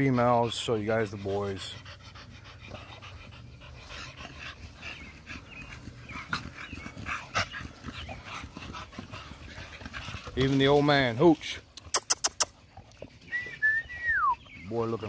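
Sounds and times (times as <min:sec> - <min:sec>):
dog panting: 0:00.0 - 0:13.2.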